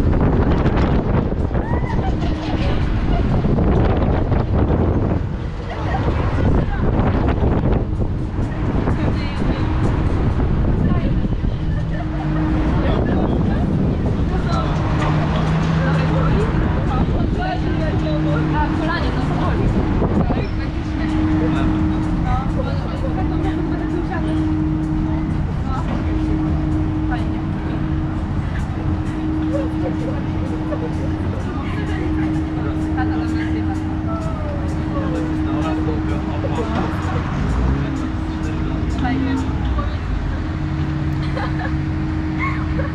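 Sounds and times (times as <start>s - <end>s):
low rumble: 0.0s - 42.9s
ride machinery humming: 0.0s - 42.9s
riders chattering: 0.0s - 42.9s.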